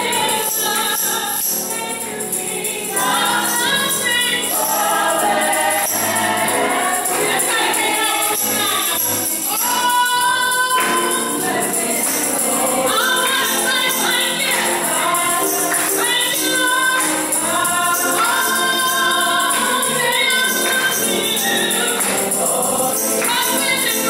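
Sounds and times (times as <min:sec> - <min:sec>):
group singing gospel: 0:00.0 - 0:24.0
jingling beat: 0:00.0 - 0:24.0
woman singing lead: 0:00.0 - 0:24.0
hand claps: 0:04.5 - 0:24.0.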